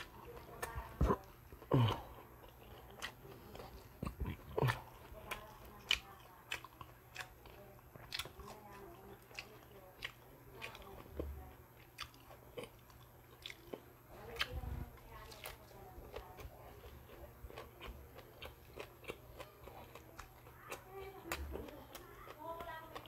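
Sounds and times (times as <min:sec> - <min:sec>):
chewing crispy fried food: 0:00.0 - 0:23.0.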